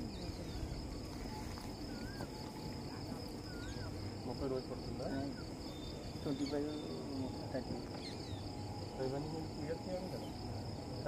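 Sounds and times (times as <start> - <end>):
insects trilling: 0.0 - 11.0
people talking quietly: 0.0 - 11.0.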